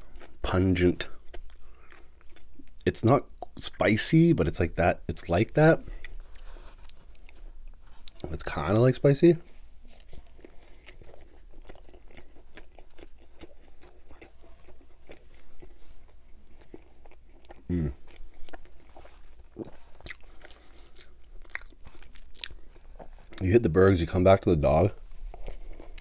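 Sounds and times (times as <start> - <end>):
wet chewing with mouth clicks: 5.9 - 8.3, 9.8 - 23.5
short vocal sound: 17.7 - 18.0.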